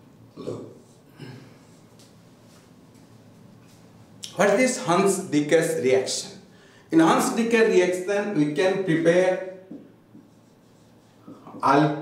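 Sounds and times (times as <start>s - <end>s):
marker scrubbing on whiteboard: 9.7s - 12.0s.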